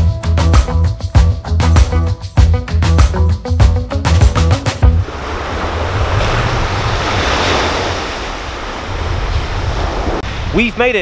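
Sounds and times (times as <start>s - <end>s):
small waves washing on beach: 5.0s - 10.6s
wind rumble on microphone: 5.0s - 10.6s.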